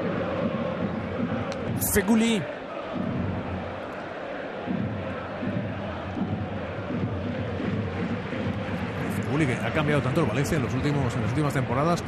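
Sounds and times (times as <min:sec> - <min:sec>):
crowd singing or calling: 0:00.0 - 0:11.1
stadium crowd hum of voices: 0:00.0 - 0:12.0.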